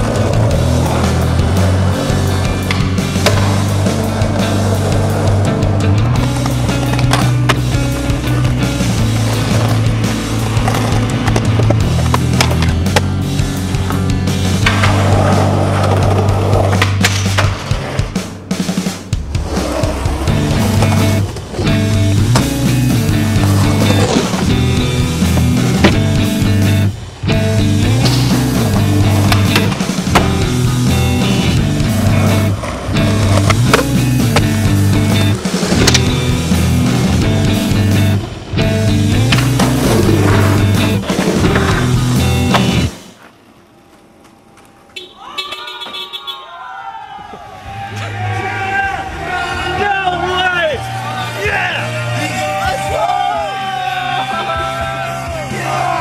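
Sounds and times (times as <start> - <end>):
skateboard wheels rolling on concrete: 0.0 - 56.0
skateboard pops and clacks: 11.3 - 13.1, 16.6 - 17.7, 35.7 - 36.1
song with low notes: 20.0 - 42.9.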